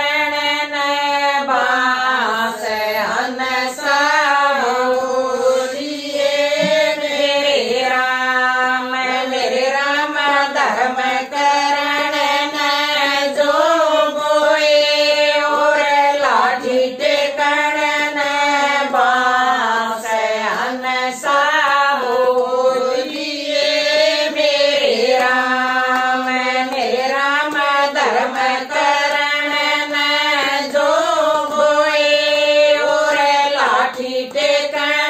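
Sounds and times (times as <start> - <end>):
women singing in unison: 0.0 - 35.0.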